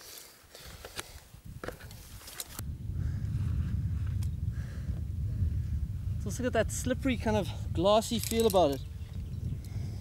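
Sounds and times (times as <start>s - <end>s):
wind buffeting microphone: 1.3s - 10.0s.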